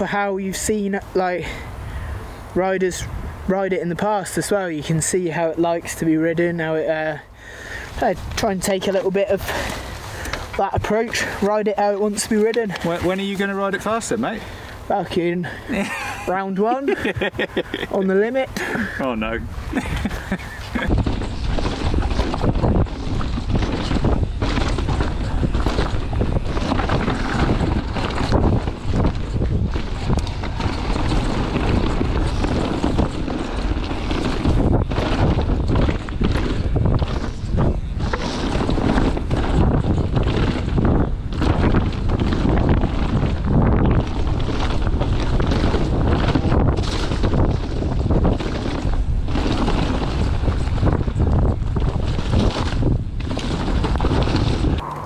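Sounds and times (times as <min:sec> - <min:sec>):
wind on microphone: 0:00.0 - 0:16.3, 0:16.9 - 0:55.0
tyres rumbling on dirt trail: 0:00.0 - 0:55.0
bike rattling and knocking: 0:03.8 - 0:54.9.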